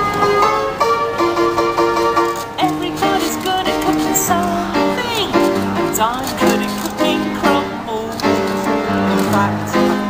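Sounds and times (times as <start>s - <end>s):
upright piano chords: 0.0s - 10.0s
woman's voice: 2.6s - 10.0s.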